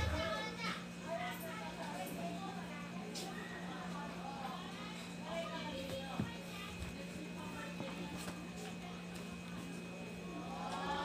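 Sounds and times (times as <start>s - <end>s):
faint distant voices: 0.0s - 11.0s
low electrical hum: 0.0s - 11.0s.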